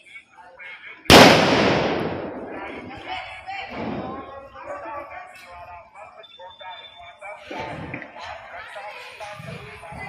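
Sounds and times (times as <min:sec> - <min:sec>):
firecracker bang: 0:01.1 - 0:03.1, 0:03.7 - 0:04.3.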